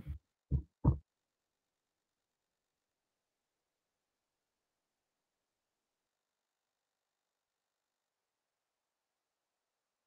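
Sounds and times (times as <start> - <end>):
dull thumps: 0.0 - 1.0.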